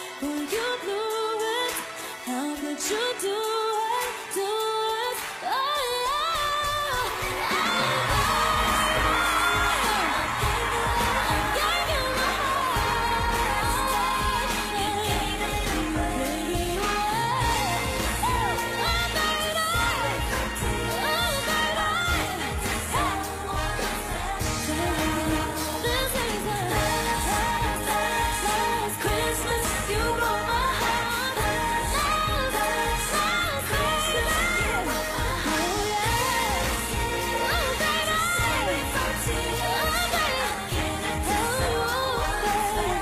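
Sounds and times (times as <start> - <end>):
christmas pop song with singing: 0.0 - 43.0
full band with bass: 7.1 - 43.0.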